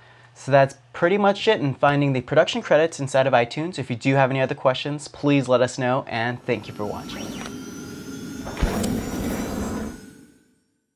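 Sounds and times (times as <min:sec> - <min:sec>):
whoosh: 0:06.3 - 0:10.6
deep hit: 0:06.4 - 0:10.4
sustained ringing tone: 0:06.4 - 0:10.7.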